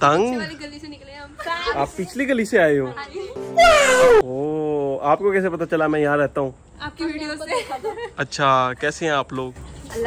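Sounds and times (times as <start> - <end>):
meow-like cry: 3.6 - 4.2.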